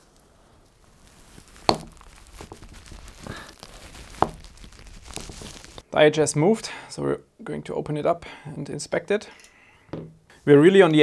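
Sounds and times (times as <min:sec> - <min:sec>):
handling and scraping noise: 0:00.0 - 0:05.8.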